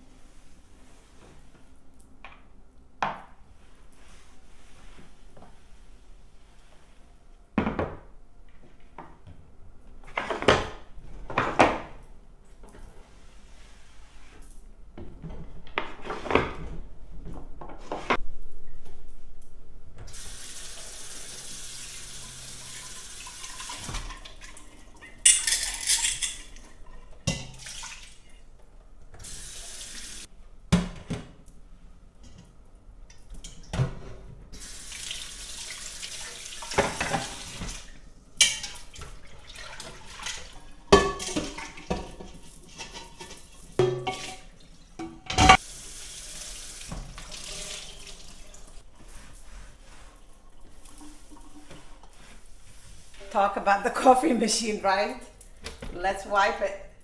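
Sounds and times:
faucet running into sink: 20.2 - 25.0, 45.5 - 48.8.

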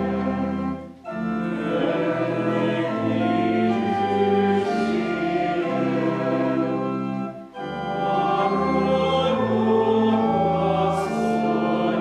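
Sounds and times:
choir singing a hymn: 0.0 - 12.0
organ: 0.0 - 12.0.

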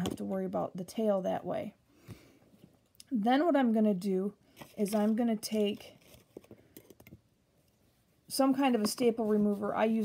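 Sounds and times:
faint clicks and taps: 6.0 - 7.8.

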